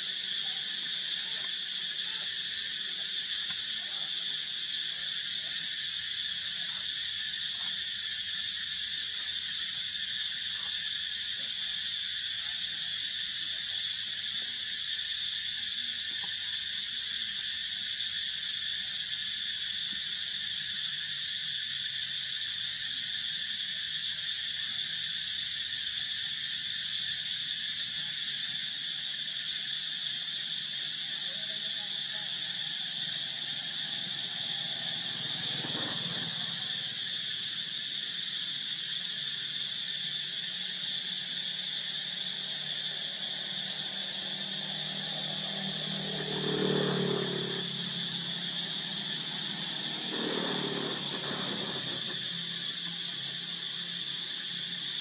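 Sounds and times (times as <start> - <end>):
insects droning: 0.0 - 55.0.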